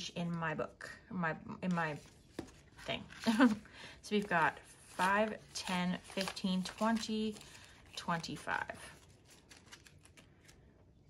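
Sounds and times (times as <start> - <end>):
banknotes crinkling: 1.7 - 11.0.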